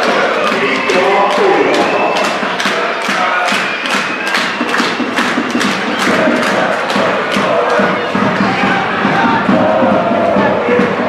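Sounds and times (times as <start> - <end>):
steady drumbeat: 0.0 - 11.0
supporters chanting in chorus: 0.0 - 11.0.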